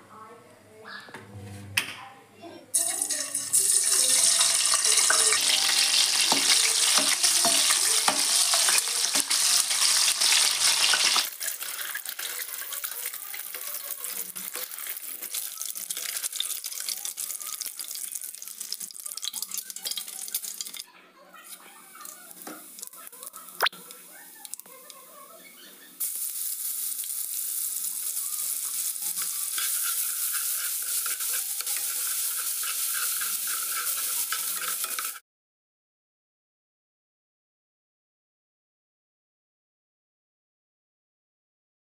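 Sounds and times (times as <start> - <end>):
eggs frying in hot oil: 2.7 - 20.9, 21.5 - 25.2, 26.0 - 35.2
spatula tapping: 6.2 - 9.4.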